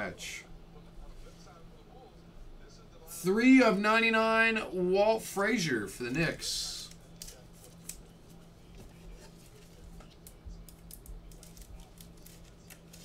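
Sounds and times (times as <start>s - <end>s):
low steady hum: 0.0s - 13.0s
computer keys clicking: 10.2s - 12.1s.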